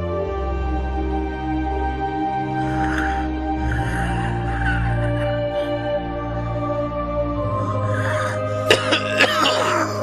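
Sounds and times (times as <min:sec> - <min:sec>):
soft background music: 0:00.0 - 0:10.0
man coughing: 0:08.6 - 0:10.0.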